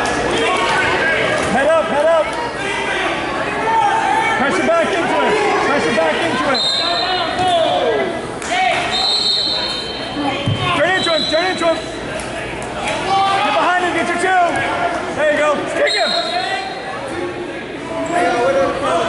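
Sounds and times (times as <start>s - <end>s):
crowd shouting in a gym: 0.0s - 19.0s.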